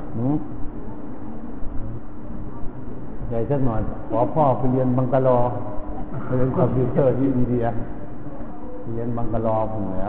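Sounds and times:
low hum and rumble: 0.0 - 10.0
man speaking: 6.3 - 7.8.

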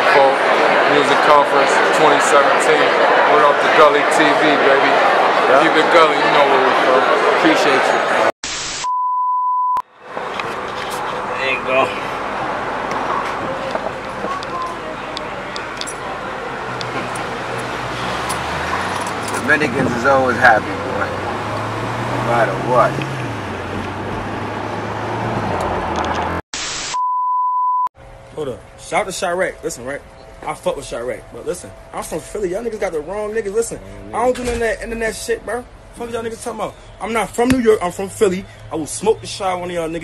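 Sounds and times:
static hiss burst: 8.4 - 8.9, 26.6 - 27.0
steady mid-pitched beep: 8.8 - 9.8, 26.9 - 27.9
car road rumble and hum: 10.0 - 26.4.

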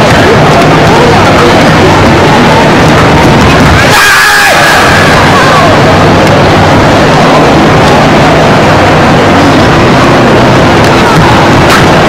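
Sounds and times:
din of crowded hall: 0.0 - 12.0.

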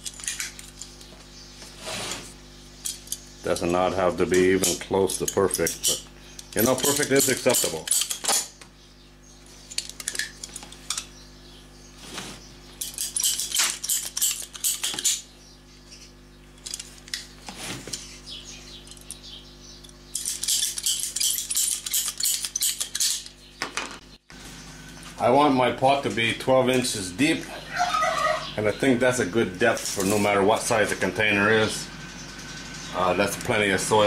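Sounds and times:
tools clattering on steel bench: 2.8 - 8.6.

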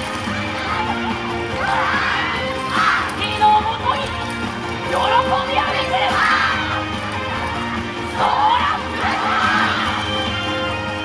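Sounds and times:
group of voices shouting: 0.5 - 3.2, 4.9 - 6.8, 8.1 - 10.3.

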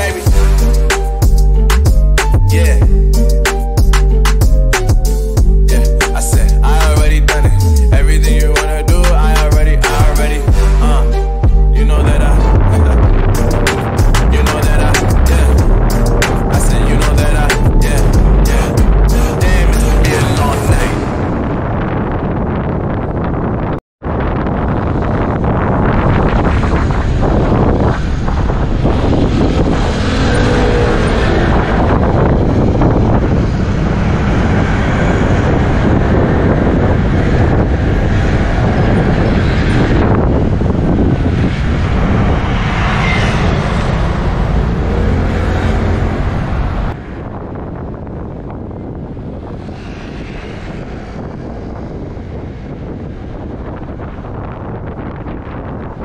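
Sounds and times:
road noise: 0.0 - 56.0
wind buffeting microphone: 11.4 - 56.0
motorcycle engine: 24.2 - 46.9.

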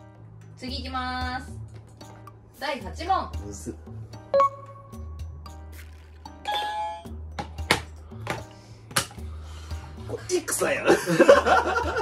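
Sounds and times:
background music: 0.0 - 12.0
electronic ding-dong chime: 4.3 - 5.3.

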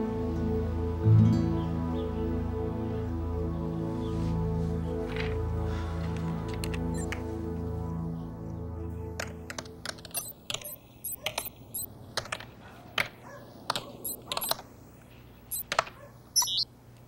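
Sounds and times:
sustained music chord: 0.0 - 9.2
computer keyboard typing: 9.9 - 11.9, 14.0 - 14.6.

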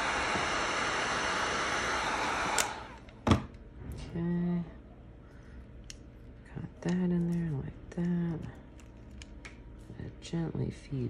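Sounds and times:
heat gun blowing: 0.0 - 3.0.

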